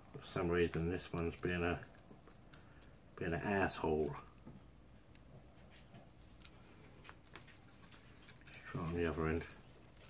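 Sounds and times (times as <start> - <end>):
small metal parts clicking: 1.0 - 3.0, 6.1 - 10.0.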